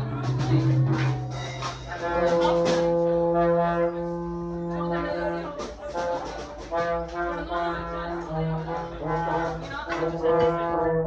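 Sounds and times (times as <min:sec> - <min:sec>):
low brass long notes: 0:00.0 - 0:11.0.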